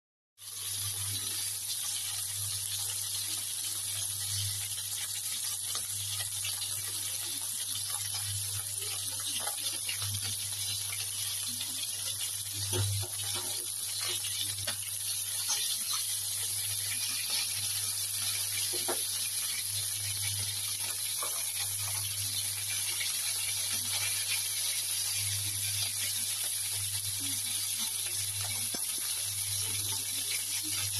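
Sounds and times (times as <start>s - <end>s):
chicken wings sizzling in oil: 0.4s - 30.9s.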